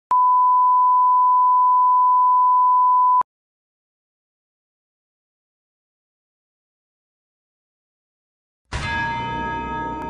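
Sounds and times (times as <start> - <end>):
steady test tone beep: 0.1 - 3.2.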